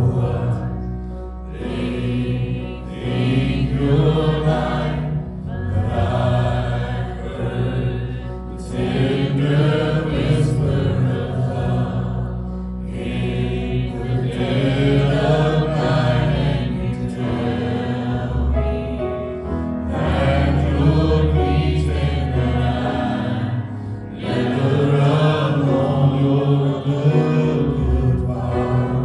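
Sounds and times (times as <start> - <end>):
musical accompaniment: 0.0 - 29.0
voices singing worship song: 0.0 - 29.0.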